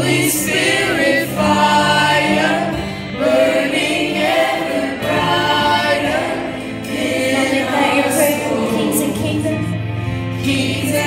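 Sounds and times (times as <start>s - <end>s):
choir singing: 0.0s - 11.0s
lead singers on microphones: 0.0s - 11.0s.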